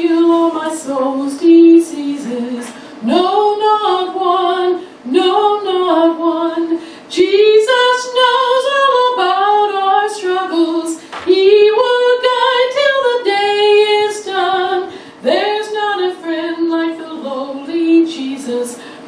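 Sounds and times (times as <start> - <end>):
woman singing a hymn: 0.0 - 19.0.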